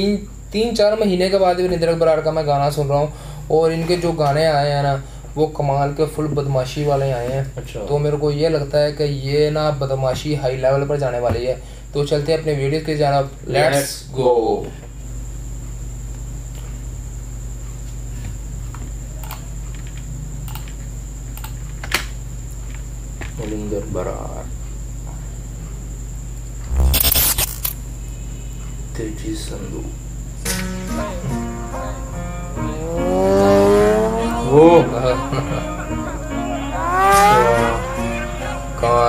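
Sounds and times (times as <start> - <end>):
steady low hum: 25.7 - 28.9
motorcycle engine revving: 32.7 - 34.7, 36.7 - 38.3.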